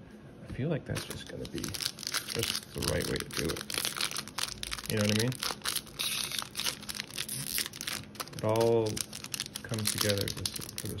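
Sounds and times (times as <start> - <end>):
foil wrapper crinkling and tearing: 0.9 - 11.0.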